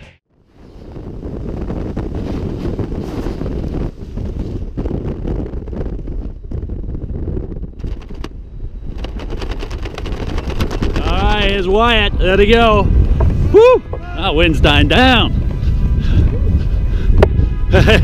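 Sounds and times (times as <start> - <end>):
wind buffeting microphone: 0.3 - 18.0.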